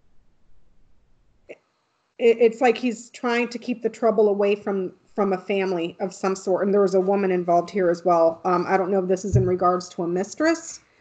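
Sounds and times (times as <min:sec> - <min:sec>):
faint low background hum: 0:00.0 - 0:11.0.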